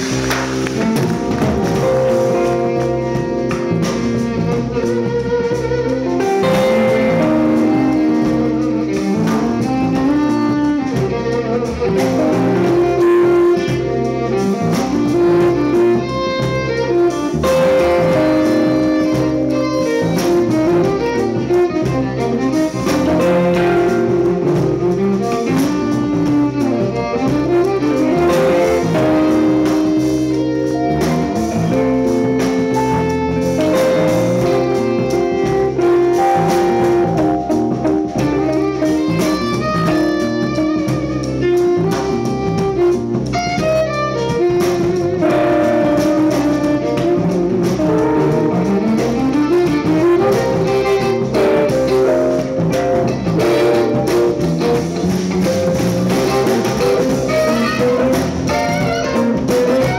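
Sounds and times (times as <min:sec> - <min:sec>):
bass: 0:00.0 - 0:59.9
drums: 0:00.0 - 0:59.9
electric guitar: 0:00.0 - 0:59.9
violin melody: 0:00.0 - 0:59.9.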